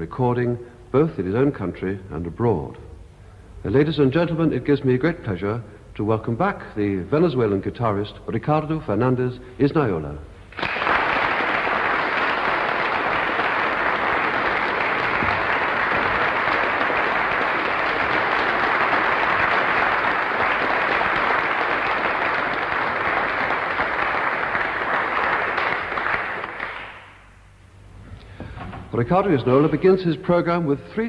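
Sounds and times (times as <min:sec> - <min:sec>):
audience applauding: 0:10.5 - 0:27.3.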